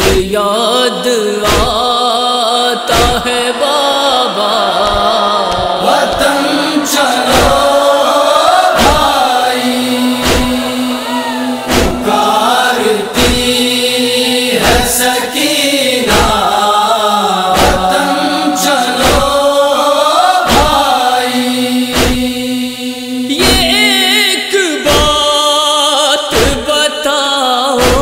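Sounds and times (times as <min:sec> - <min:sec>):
voices chanting wordless melody: 0:00.0 - 0:28.0
chest-beating thumps: 0:04.8 - 0:13.9, 0:16.0 - 0:16.5, 0:17.5 - 0:19.5, 0:20.5 - 0:20.9, 0:21.9 - 0:22.4
held drone: 0:06.0 - 0:15.1.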